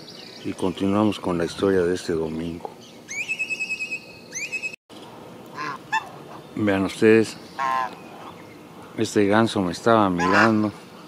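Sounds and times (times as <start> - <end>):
high whistled calls: 2.8 - 4.8.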